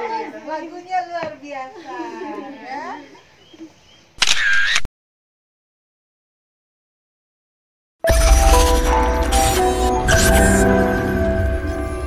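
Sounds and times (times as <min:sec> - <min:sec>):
camera shutter: 0:04.2 - 0:04.9, 0:08.1 - 0:10.8.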